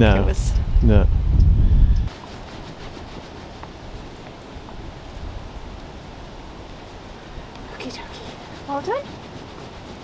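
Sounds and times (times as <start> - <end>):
steady low rumble: 0.0 - 2.1.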